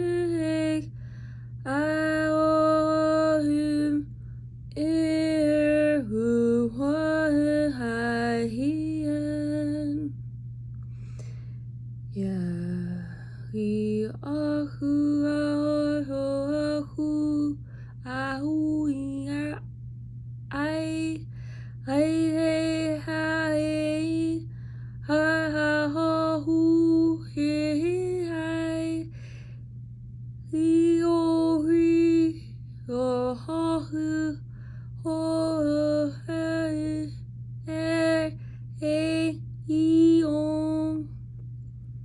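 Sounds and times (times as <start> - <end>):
woman singing unaccompanied: 0.0 - 4.1, 4.7 - 10.2, 12.1 - 19.7, 20.5 - 29.2, 30.4 - 41.2
steady low hum: 0.0 - 42.0.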